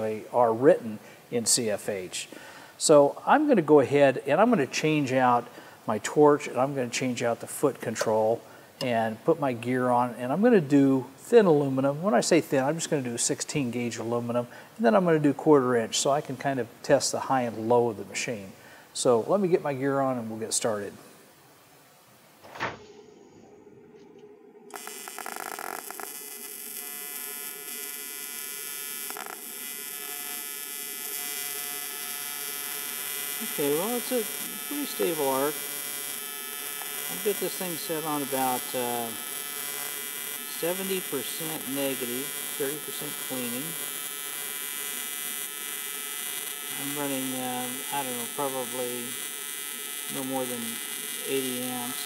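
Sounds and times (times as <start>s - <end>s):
welding arc buzzing: 24.7s - 52.0s.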